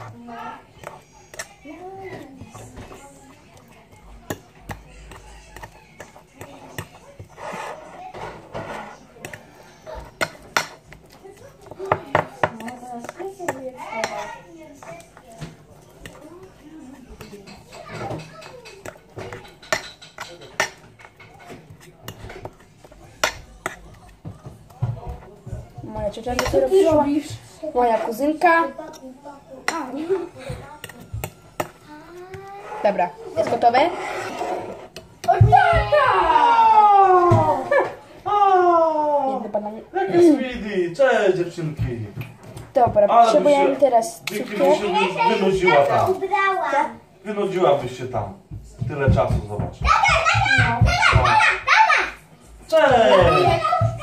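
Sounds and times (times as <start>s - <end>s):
cutlery scraping on a plate: 0.0s - 35.3s.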